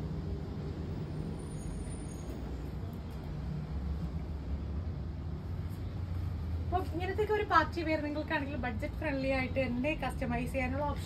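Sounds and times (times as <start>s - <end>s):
woman speaking: 6.7s - 11.0s.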